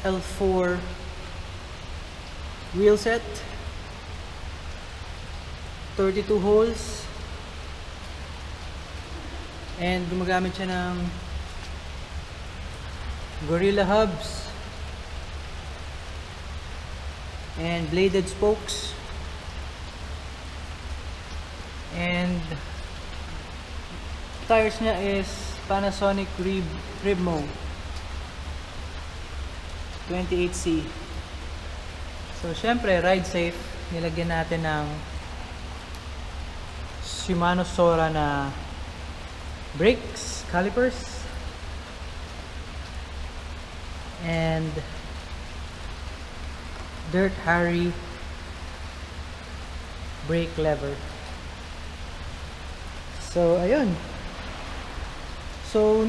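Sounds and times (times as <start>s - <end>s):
steady background hiss: 0.0s - 56.0s.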